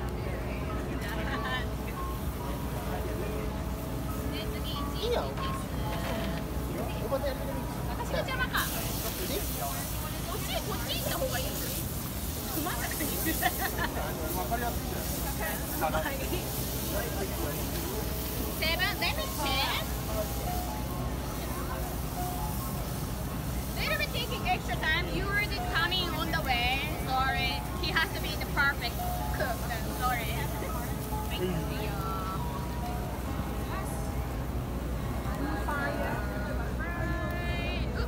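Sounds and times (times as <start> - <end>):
background music: 0.0 - 38.0
chatter of voices: 0.0 - 38.0
crowd talking: 0.0 - 38.0
scallops sizzling on griddle: 6.4 - 33.8.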